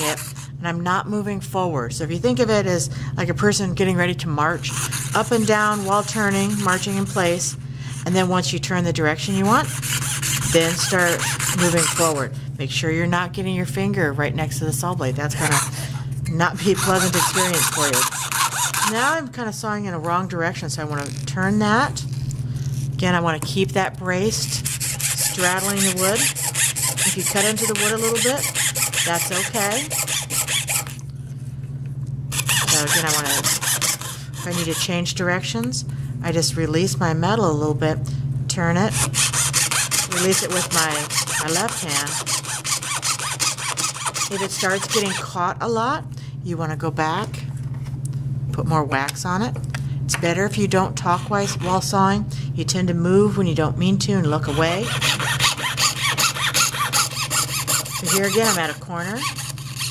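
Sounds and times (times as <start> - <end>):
fine saw rasping: 0.0 - 0.4, 4.6 - 7.6, 9.5 - 12.3, 15.4 - 15.9, 16.6 - 19.1, 24.4 - 31.0, 32.3 - 35.0, 38.9 - 45.3, 51.0 - 51.9, 54.4 - 59.9
steady low hum: 0.0 - 59.9.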